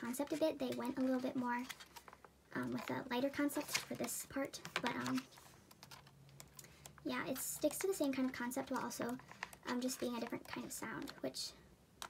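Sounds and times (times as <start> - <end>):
photobook pages turning: 0.0 - 6.1, 6.7 - 11.3.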